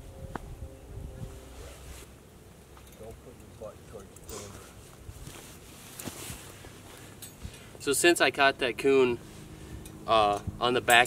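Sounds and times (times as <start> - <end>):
wind buffeting microphone: 0.0 - 1.7.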